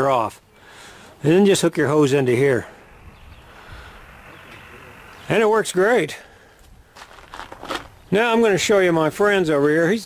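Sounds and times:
low hiss: 0.0s - 7.0s
faint rustling: 6.3s - 8.1s.

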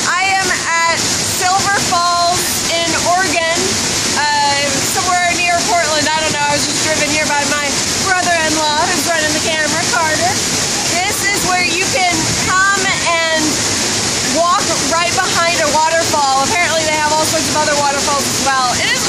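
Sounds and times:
woman talking: 0.0s - 13.6s, 14.3s - 19.0s
waterfall rushing: 0.0s - 19.0s.

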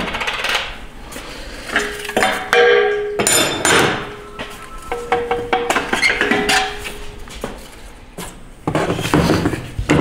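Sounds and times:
hard knock with ringing tones: 2.2s - 7.0s.

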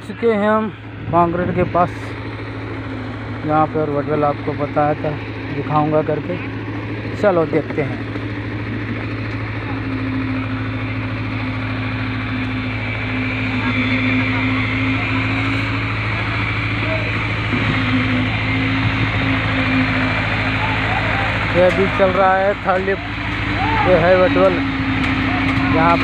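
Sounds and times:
diesel engine running: 0.0s - 26.0s
higher steady tone: 0.0s - 26.0s.

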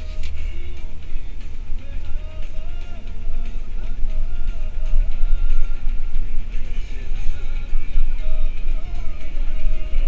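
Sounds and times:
car driving rumble: 0.0s - 10.0s
music with heavy bass: 0.0s - 10.0s.

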